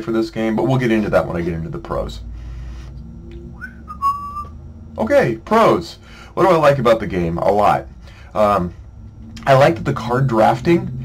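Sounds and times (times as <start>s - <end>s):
faint low hum: 0.0s - 11.0s
high whistle-like tone: 2.7s - 4.6s.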